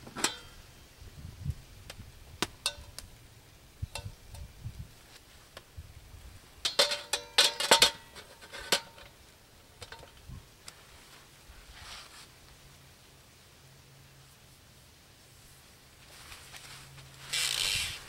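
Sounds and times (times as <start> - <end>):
metal grill lid and tongs clinking: 0.2 - 0.5, 2.6 - 3.0, 6.6 - 9.2.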